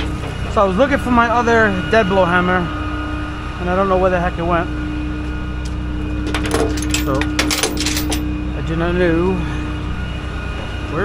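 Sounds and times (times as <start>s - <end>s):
truck engine running: 0.0s - 11.0s.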